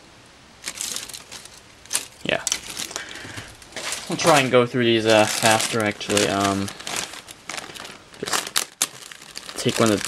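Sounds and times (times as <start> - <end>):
plastic bags crinkling: 0.6 - 10.0.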